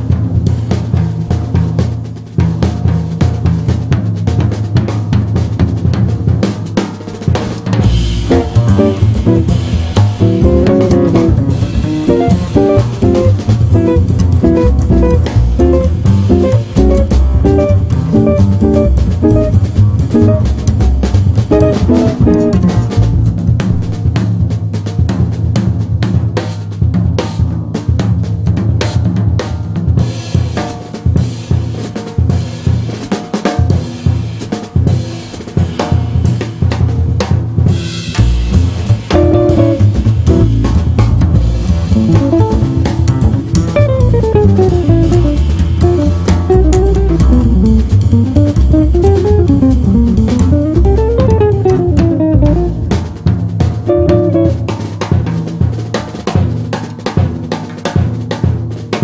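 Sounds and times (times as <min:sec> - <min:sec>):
busy drum kit: 0:00.0 - 0:59.0
jazz trio playing: 0:00.1 - 0:25.3, 0:37.7 - 0:57.7
single melody notes: 0:13.9 - 0:20.5, 0:43.8 - 0:52.8, 0:53.9 - 0:54.7.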